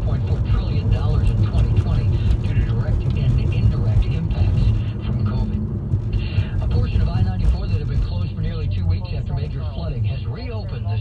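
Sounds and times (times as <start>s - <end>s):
car road and engine rumble: 0.0s - 11.0s
radio news voice: 0.0s - 11.0s.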